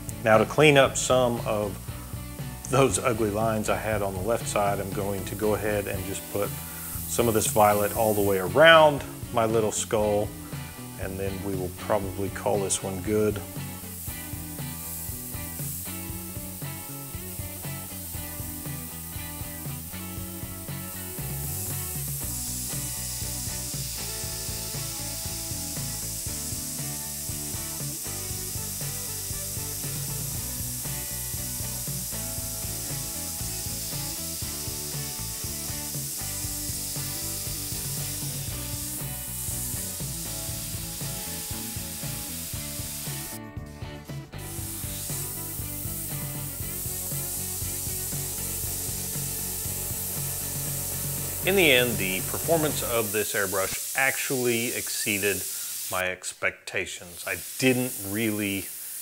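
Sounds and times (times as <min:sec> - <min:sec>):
background music: 0:00.0 - 0:56.0
airbrush spraying hiss: 0:00.0 - 0:56.1, 0:57.0 - 0:59.0.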